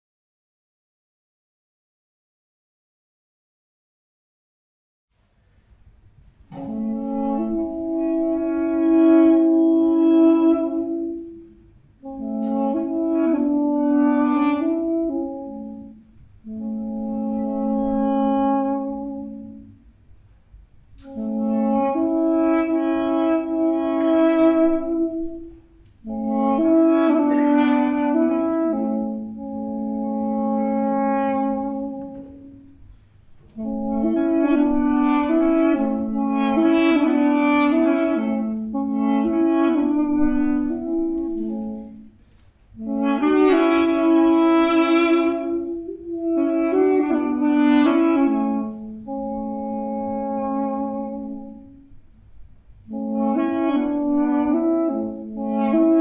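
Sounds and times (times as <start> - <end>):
duduk duet melody: 6.4 - 19.9, 20.8 - 56.0.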